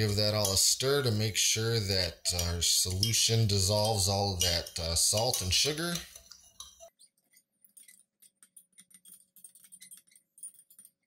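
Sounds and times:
spoon clinking in glass cup: 2.3s - 6.9s.

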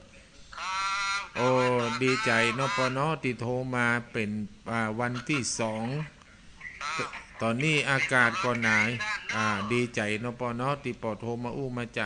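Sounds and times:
man talking: 1.4s - 6.2s, 6.8s - 12.0s.

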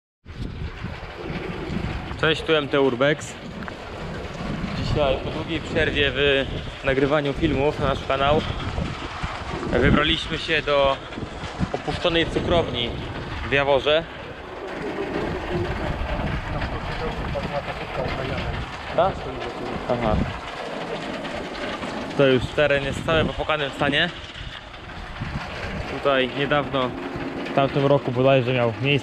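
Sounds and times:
wind blowing on microphone: 0.3s - 29.0s.

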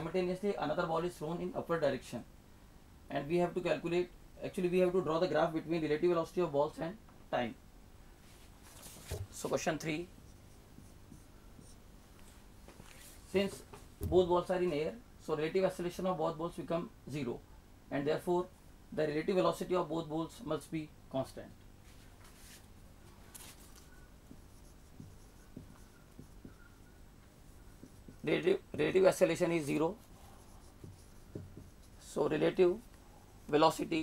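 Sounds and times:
marker pen writing on whiteboard: 8.8s - 14.2s, 23.4s - 34.0s
marker tip tapping board: 24.3s - 26.8s, 27.8s - 28.3s, 30.7s - 31.9s.

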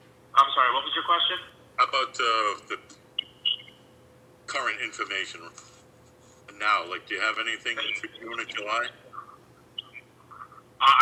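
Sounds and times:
faint steady hum: 0.0s - 11.0s
faint chirps: 3.2s - 3.9s, 7.7s - 10.6s
man saying uh: 6.5s - 8.9s.

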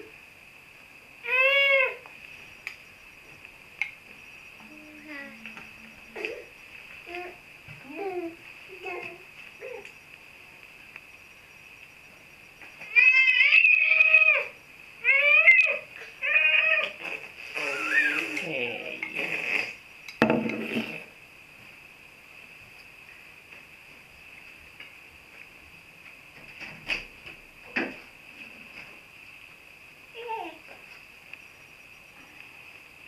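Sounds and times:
thump: 20.2s - 20.9s.

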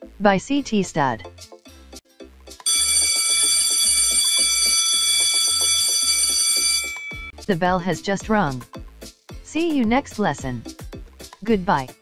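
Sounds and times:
school bell ringing: 2.7s - 7.3s
background music with low beat: 6.9s - 12.0s.

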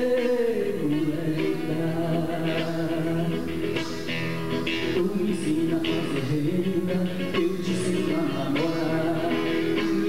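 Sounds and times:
acoustic guitar: 0.0s - 10.0s
man singing folk song: 0.0s - 10.0s.

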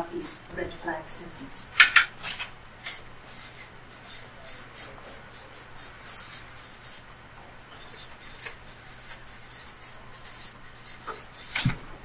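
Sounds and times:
marker pen scratching on paper: 2.8s - 7.0s, 7.7s - 11.7s.

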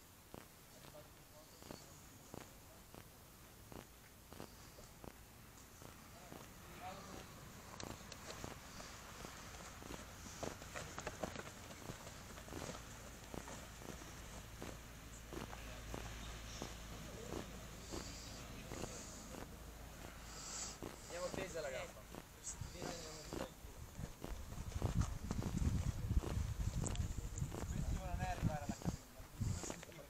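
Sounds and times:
soft thuds and scuffs: 3.7s - 30.0s.

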